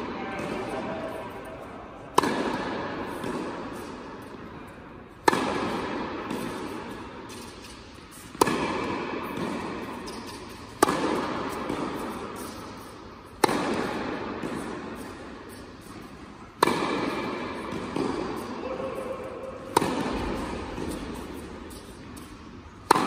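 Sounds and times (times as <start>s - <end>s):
tennis racket hitting ball: 0.0s - 1.4s, 2.0s - 23.0s
echo in indoor hall: 0.0s - 7.2s, 15.9s - 23.0s.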